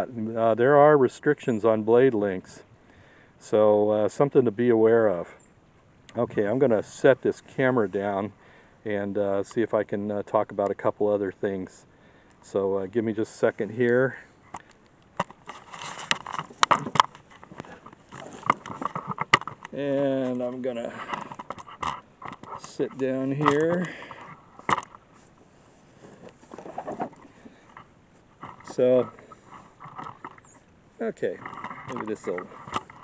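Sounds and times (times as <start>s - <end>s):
camera handling on wooden boards: 14.5s - 20.4s, 21.0s - 25.3s, 31.4s - 33.0s
camera scraping on wooden table: 15.4s - 19.7s, 25.9s - 30.6s.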